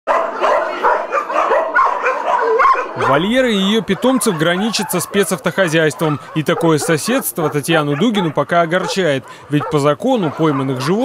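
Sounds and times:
dogs barking and yelping: 0.1 - 11.0.

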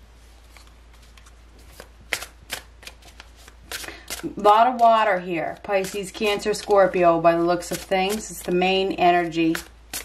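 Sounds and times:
cards being shuffled: 0.4 - 7.0, 7.6 - 10.0.

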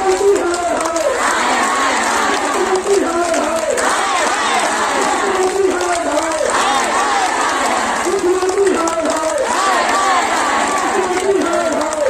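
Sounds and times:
crowd of women shouting slogans: 1.0 - 5.4, 6.4 - 8.1, 9.4 - 11.6.

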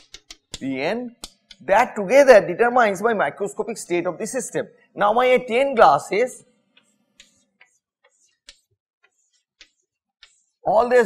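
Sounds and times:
chalk tapping on blackboard: 0.0 - 1.6, 6.5 - 10.7.

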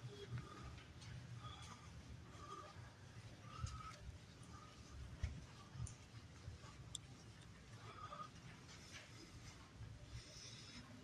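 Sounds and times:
faint footsteps: 0.0 - 11.0.

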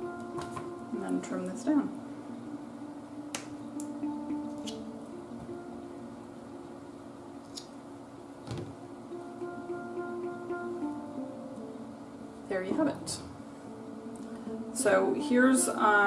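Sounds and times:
soft background music: 0.0 - 16.0.

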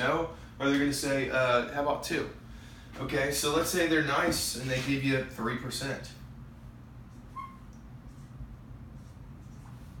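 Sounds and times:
low steady hum: 0.0 - 10.0
marker squeak: 7.2 - 7.8.

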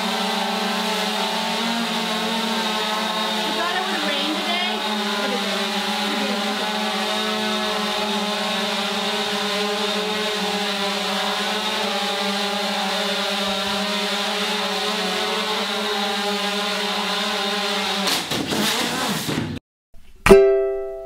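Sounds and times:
drone propellers buzzing: 0.0 - 17.8.

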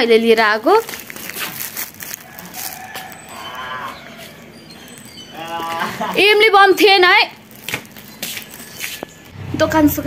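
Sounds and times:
rustling and handling noise: 0.2 - 9.3
faint animal call: 2.3 - 4.4.

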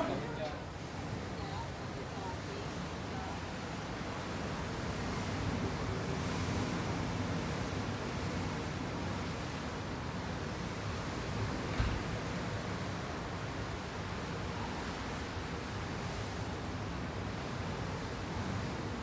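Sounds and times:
open sea: 0.0 - 19.0.

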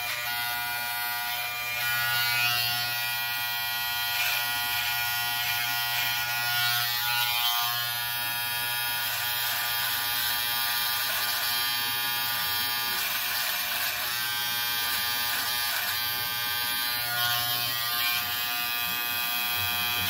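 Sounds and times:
electric hair clipper buzzing: 0.0 - 20.0.

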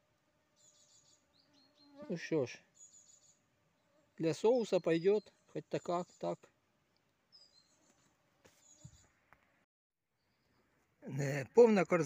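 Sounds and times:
faint high insect chirping: 0.5 - 5.4.

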